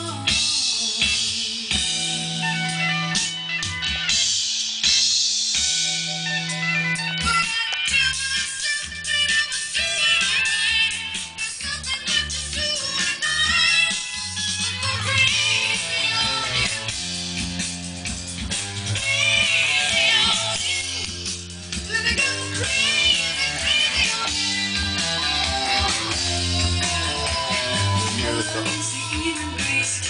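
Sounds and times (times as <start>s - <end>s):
song with singing and guitar: 0.0s - 30.0s.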